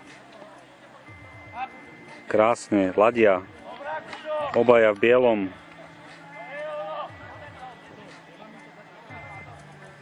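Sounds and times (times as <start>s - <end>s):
people talking in background: 0.0s - 10.0s.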